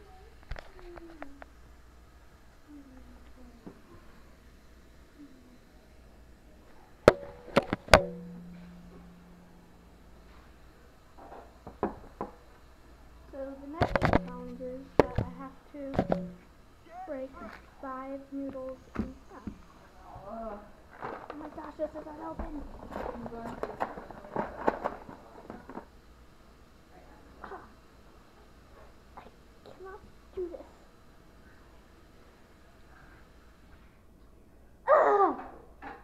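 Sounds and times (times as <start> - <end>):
low hum: 0.9 - 24.6.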